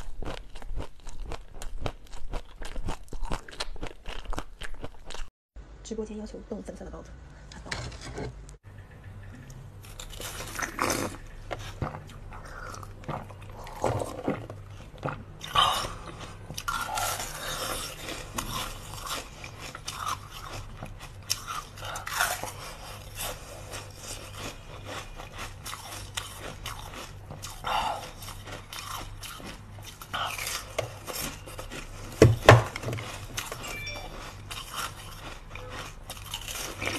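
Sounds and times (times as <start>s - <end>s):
ice crunching between teeth: 33.0s - 36.9s.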